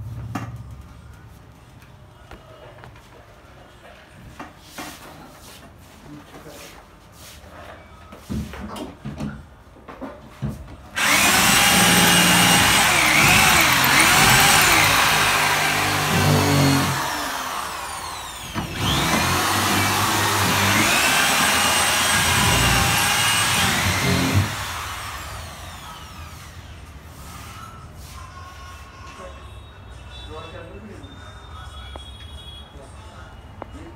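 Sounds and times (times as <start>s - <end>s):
power drill boring into wood: 11.0s - 26.4s.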